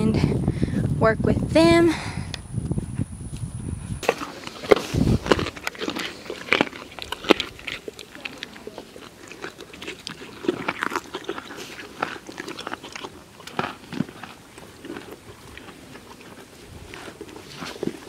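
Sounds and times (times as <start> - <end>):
horse crunching carrots: 4.0 - 18.0.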